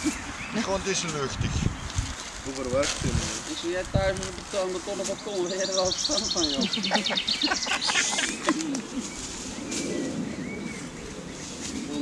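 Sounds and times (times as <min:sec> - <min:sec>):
high bird chirps: 0:05.2 - 0:11.5.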